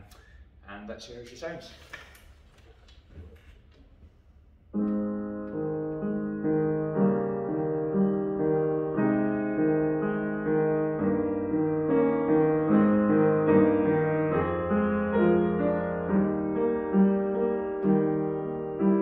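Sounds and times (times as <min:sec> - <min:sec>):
upright piano playing chords: 0:04.7 - 0:19.0.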